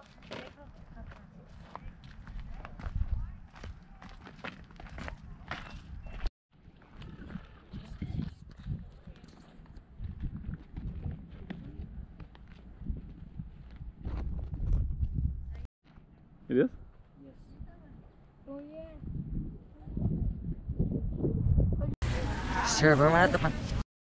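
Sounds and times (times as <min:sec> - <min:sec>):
footsteps crunching on gravel: 0:00.0 - 0:14.6
wind rumbling on microphone: 0:00.7 - 0:04.0, 0:04.8 - 0:15.7, 0:16.7 - 0:22.6.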